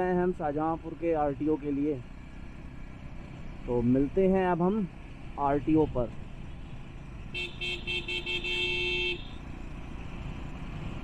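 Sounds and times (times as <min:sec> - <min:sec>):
motorcycle riding with wind noise: 0:00.0 - 0:11.0
vehicle horn toots: 0:07.3 - 0:09.4.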